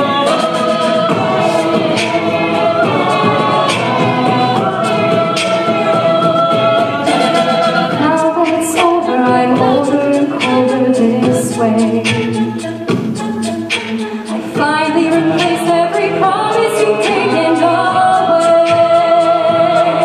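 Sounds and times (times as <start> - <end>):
female lead singing: 0.0 - 12.4, 14.5 - 20.0
backing vocal chords: 0.0 - 12.7, 13.5 - 20.0
vocal percussion beat: 0.0 - 20.0.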